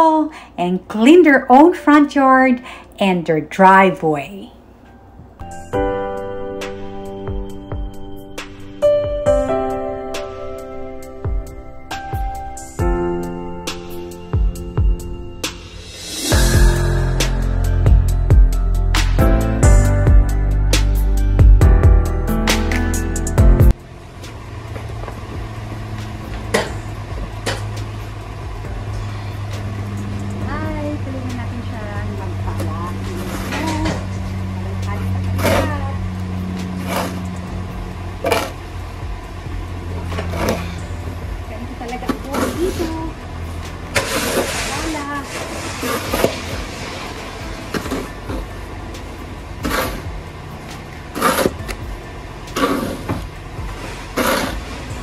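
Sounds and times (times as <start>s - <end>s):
steady low hum: 2.6s - 55.0s
snow shovel scraping snow: 32.7s - 33.9s, 35.4s - 36.0s, 36.6s - 37.4s, 38.2s - 38.6s, 42.1s - 43.1s, 43.9s - 48.6s, 49.6s - 50.1s, 51.1s - 51.8s, 52.5s - 55.0s.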